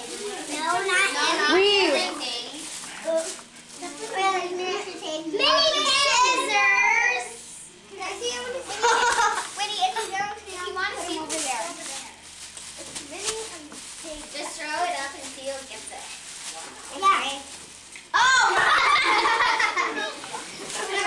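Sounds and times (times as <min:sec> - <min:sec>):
girls chattering and exclaiming: 0:00.0 - 0:12.2, 0:16.8 - 0:21.0.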